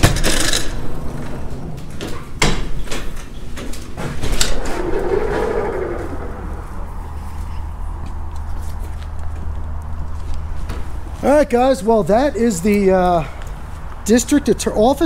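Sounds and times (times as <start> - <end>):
wind rumble on microphone: 4.5 - 10.6.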